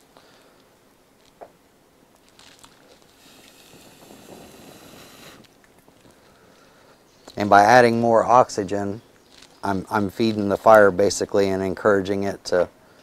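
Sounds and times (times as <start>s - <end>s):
person blowing into stove: 3.1s - 5.6s.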